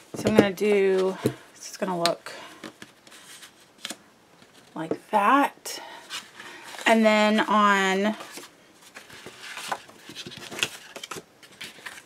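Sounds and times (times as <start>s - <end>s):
paper rustling: 8.2s - 12.0s.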